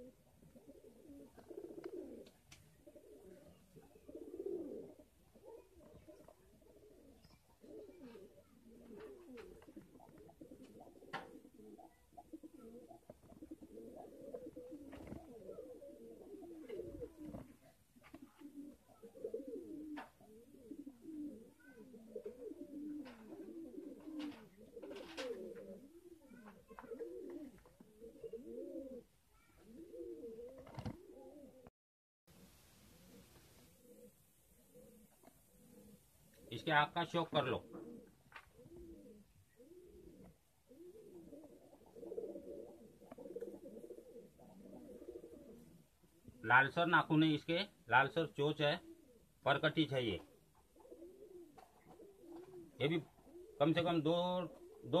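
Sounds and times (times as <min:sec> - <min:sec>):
pigeons cooing: 0:00.0 - 0:31.7, 0:32.3 - 0:55.0.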